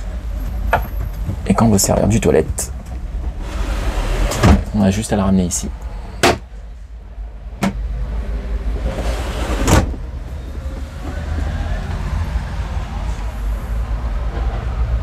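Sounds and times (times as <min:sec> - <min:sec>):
steady low rumble: 0:00.0 - 0:09.0.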